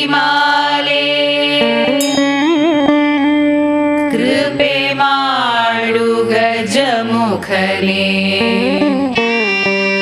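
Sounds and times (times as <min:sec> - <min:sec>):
women singing a chant in unison: 0:00.0 - 0:02.0, 0:04.1 - 0:08.9.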